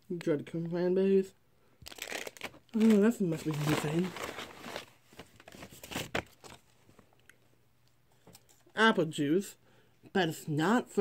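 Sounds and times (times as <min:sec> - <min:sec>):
paper bag and plastic crinkling: 0:01.8 - 0:07.0.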